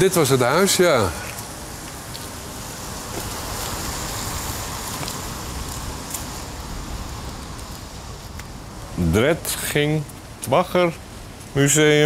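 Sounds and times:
car tyres hissing on wet road: 0:00.0 - 0:09.8.

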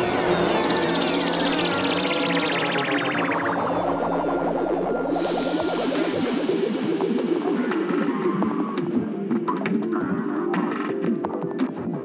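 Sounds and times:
repeated synth notes: 0:00.0 - 0:09.4.

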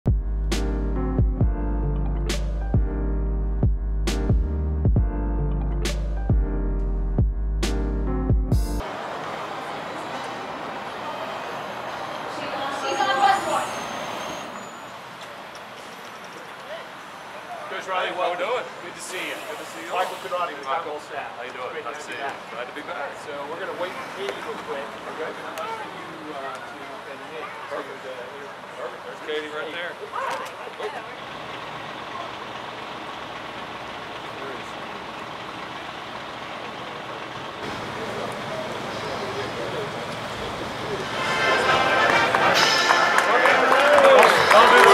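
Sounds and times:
bus pulling up and idling: 0:00.1 - 0:44.9
pneumatic air hiss: 0:19.3 - 0:20.5.

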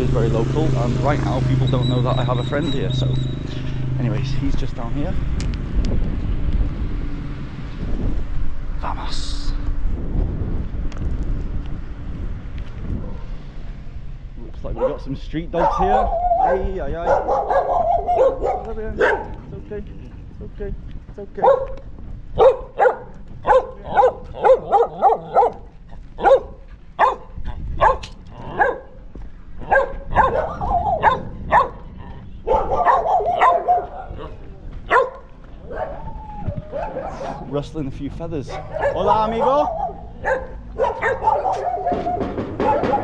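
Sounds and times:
wind buffeting microphone: 0:00.0 - 0:43.0
dogs barking: 0:14.6 - 0:19.6, 0:21.4 - 0:37.7, 0:38.3 - 0:43.0.

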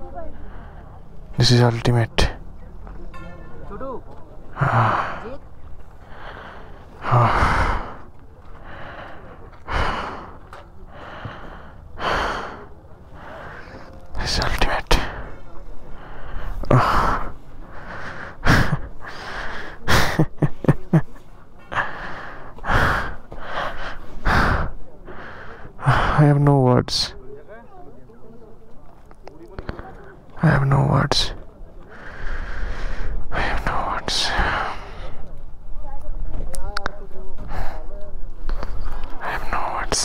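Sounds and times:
person breathing hard: 0:04.6 - 0:05.3, 0:06.0 - 0:13.9, 0:14.9 - 0:20.3, 0:21.7 - 0:26.2, 0:31.9 - 0:35.3.

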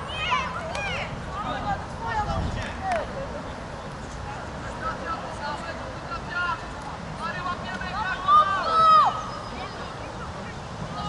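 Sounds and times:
young players shouting: 0:00.0 - 0:03.0, 0:07.2 - 0:11.0
wind on microphone: 0:00.8 - 0:04.4.

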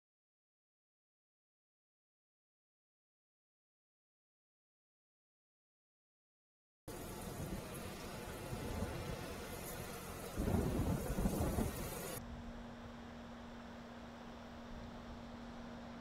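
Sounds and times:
rushing rumbling noise: 0:06.9 - 0:12.2
low hum: 0:06.9 - 0:16.0.

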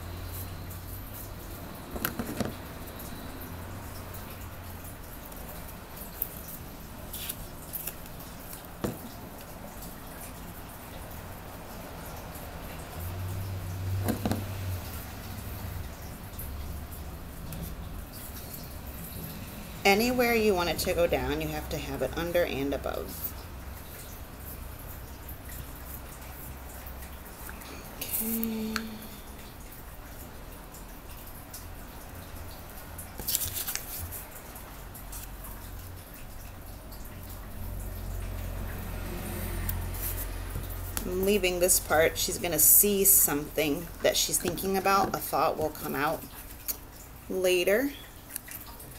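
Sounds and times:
paper rustling and scratching: 0:07.1 - 0:08.6, 0:33.2 - 0:34.2.

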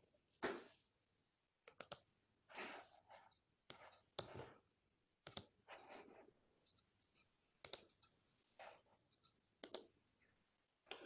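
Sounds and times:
computer mouse clicking: 0:01.7 - 0:02.1, 0:03.6 - 0:04.5, 0:05.2 - 0:05.9, 0:06.6 - 0:08.2, 0:09.0 - 0:10.0.

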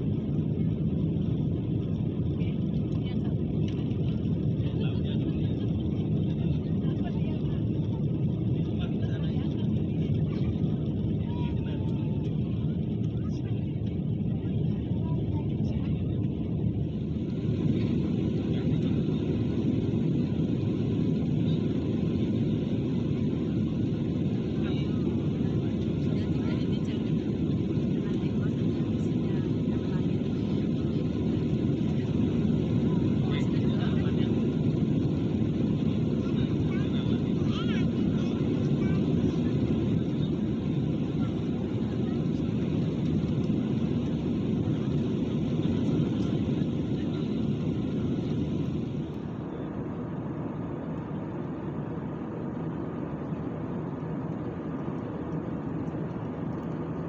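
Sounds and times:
faint passenger voices: 0:00.0 - 0:57.0
jet engines and rushing air: 0:00.0 - 0:57.0.

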